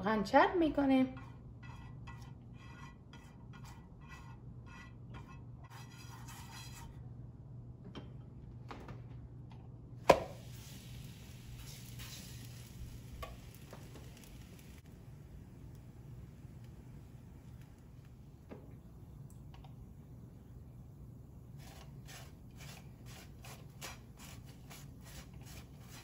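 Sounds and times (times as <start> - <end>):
brush spreading oil in pan: 1.1 - 7.0, 10.4 - 14.9, 21.6 - 26.0
knock against pan: 10.1 - 10.3
dough sizzling in oil: 10.1 - 15.0.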